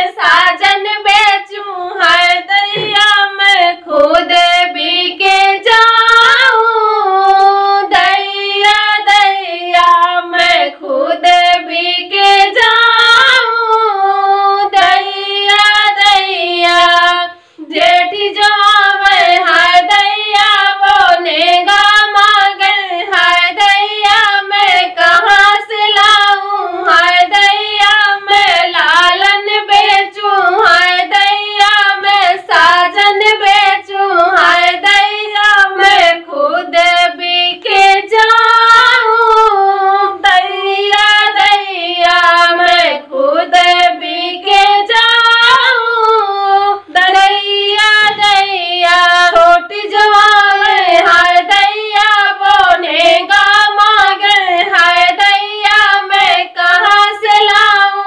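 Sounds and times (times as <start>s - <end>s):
women singing unaccompanied: 0.0s - 58.0s.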